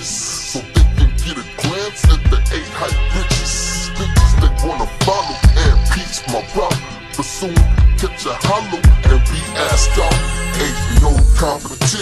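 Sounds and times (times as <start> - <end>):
slowed hip hop rapping: 0.0 - 12.0.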